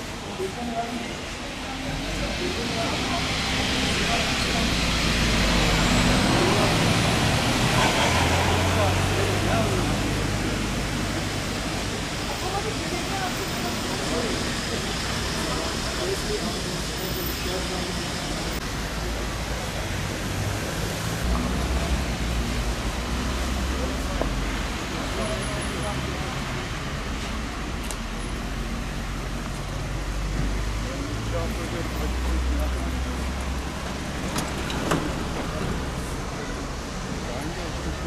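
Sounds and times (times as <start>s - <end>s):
distant traffic: 0.0s - 38.0s
faint voices: 0.0s - 38.0s.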